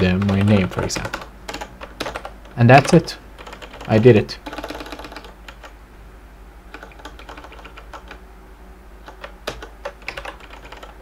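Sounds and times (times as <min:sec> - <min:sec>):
keyboard keys clicking: 0:00.0 - 0:05.7, 0:06.7 - 0:08.2, 0:09.0 - 0:11.0.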